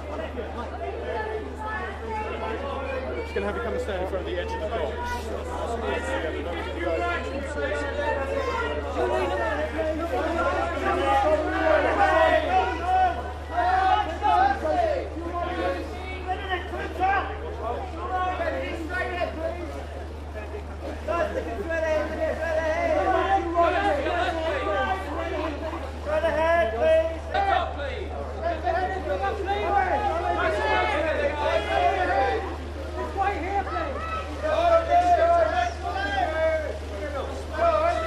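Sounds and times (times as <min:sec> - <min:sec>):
many people talking: 0:00.0 - 0:38.0
people chattering: 0:00.0 - 0:38.0.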